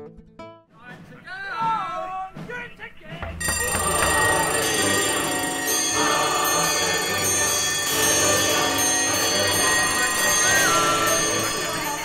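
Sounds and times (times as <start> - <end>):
alarm clock bell ringing: 3.4 - 12.0.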